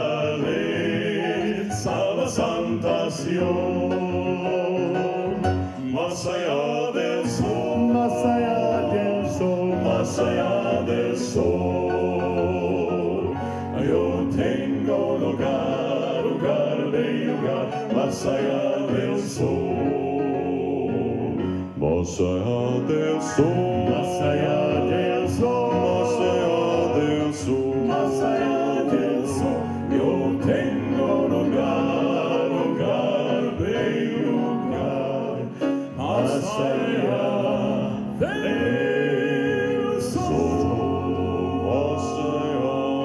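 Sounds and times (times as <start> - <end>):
male vocal quartet singing: 0.0 - 43.0.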